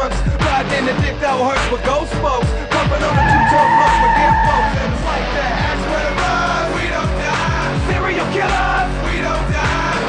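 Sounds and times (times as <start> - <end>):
hip-hop music with deep bass: 0.0 - 10.0
car tyres squealing: 3.0 - 5.6.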